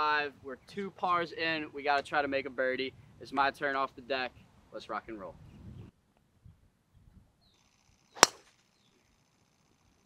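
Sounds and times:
golf club striking ball: 8.2 - 8.5.

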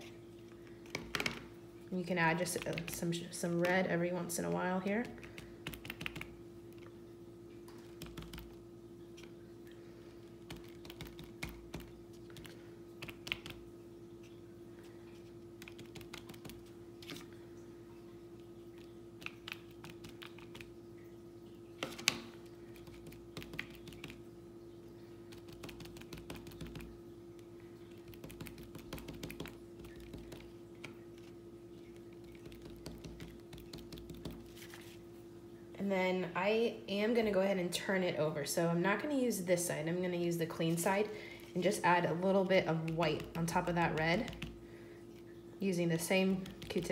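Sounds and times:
faint hum: 0.0 - 46.9
cotton swabs tapping paper: 10.4 - 13.6, 25.3 - 26.9, 28.0 - 31.3, 32.2 - 35.0, 42.8 - 44.6, 46.4 - 46.9.

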